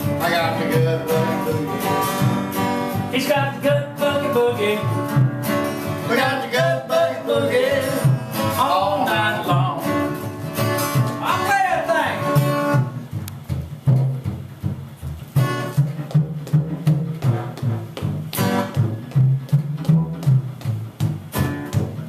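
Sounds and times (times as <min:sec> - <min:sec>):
man singing: 0:00.0 - 0:02.1, 0:03.0 - 0:05.1, 0:06.0 - 0:10.2, 0:11.2 - 0:12.4
acoustic guitar strumming: 0:00.0 - 0:22.0
washtub bass: 0:00.0 - 0:22.0.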